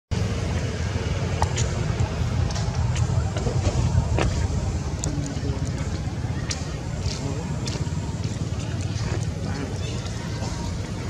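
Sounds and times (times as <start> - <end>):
wind buffeting microphone: 0.2 - 11.0.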